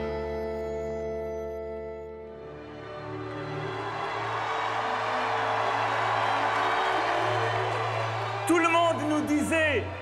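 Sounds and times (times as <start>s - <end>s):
background music: 0.0s - 10.0s
crowd cheering and clapping: 2.3s - 10.0s.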